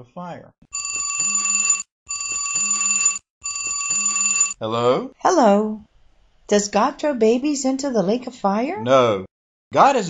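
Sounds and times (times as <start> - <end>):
phone trilling ringtone: 0.7 - 4.6.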